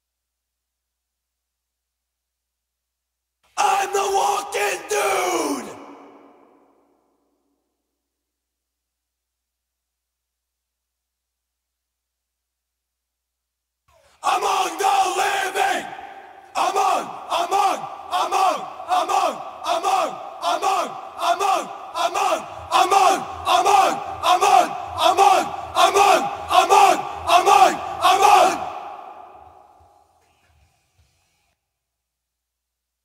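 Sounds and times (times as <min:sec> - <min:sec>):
metal vocal shout: 0:03.6 - 0:06.5, 0:14.2 - 0:29.1.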